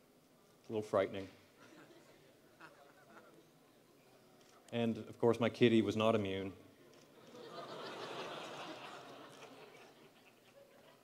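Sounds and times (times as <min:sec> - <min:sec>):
audience laughing quietly: 0:01.6 - 0:03.6, 0:07.1 - 0:11.0.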